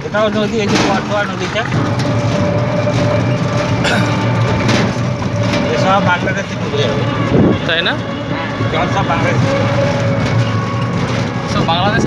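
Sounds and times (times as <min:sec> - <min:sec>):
constant tone: 0:00.0 - 0:12.0
vehicle ride noise: 0:00.0 - 0:12.0.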